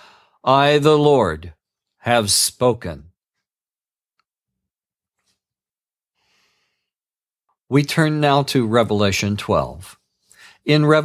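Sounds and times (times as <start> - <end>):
person speaking: 0.5 - 3.2
faint intake of breath: 10.2 - 10.6.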